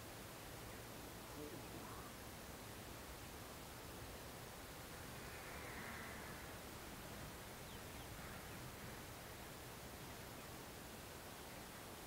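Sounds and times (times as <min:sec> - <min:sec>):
faint outdoor hiss: 0:00.0 - 0:12.0.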